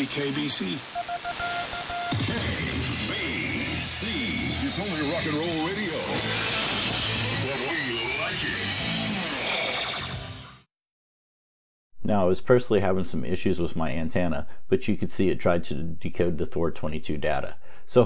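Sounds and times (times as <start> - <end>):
radio static hiss: 0.0 - 9.9
thin radio music: 0.0 - 10.2.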